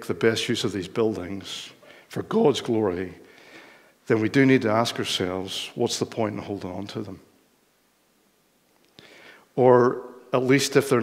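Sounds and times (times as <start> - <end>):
man speaking: 0.0 - 3.3, 4.0 - 7.3, 9.5 - 11.0.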